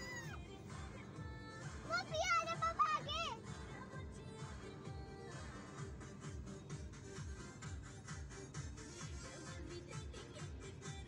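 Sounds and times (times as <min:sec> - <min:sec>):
child calling out: 0:00.0 - 0:00.4, 0:01.9 - 0:03.4
background music with steady beat: 0:00.0 - 0:11.0.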